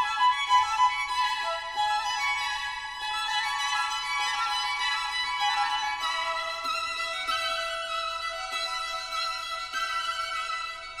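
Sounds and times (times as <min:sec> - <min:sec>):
violin melody with held notes: 0:00.0 - 0:11.0.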